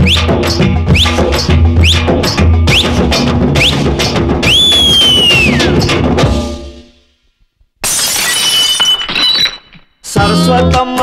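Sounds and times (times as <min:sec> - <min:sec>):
glass shards clinking: 0:07.8 - 0:09.9
glass shattering: 0:07.8 - 0:10.0.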